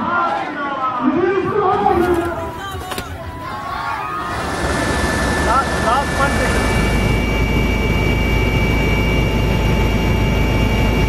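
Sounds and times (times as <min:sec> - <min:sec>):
helicopter turbine whine: 0:02.3 - 0:11.0.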